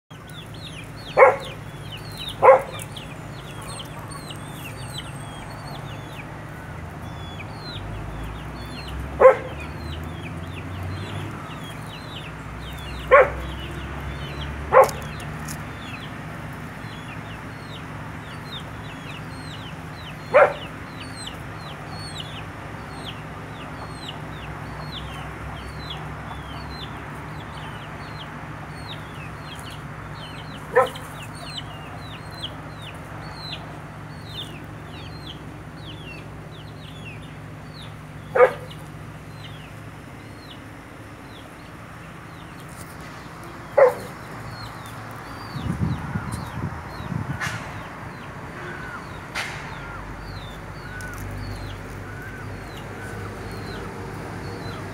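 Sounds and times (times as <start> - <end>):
chickens clucking: 0.1 - 40.7, 41.3 - 54.9
small birds chirping: 0.1 - 54.9.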